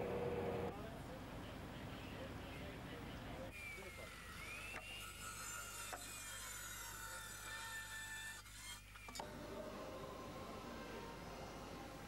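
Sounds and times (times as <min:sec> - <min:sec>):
circular saw cutting wood: 0:04.3 - 0:08.8.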